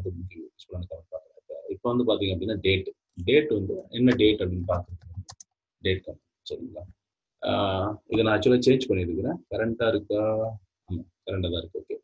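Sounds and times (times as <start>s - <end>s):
man speaking: 0.0s - 5.3s, 5.9s - 12.0s.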